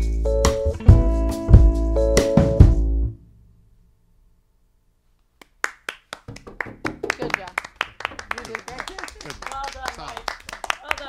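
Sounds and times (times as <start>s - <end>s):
people clapping: 5.4s - 11.0s.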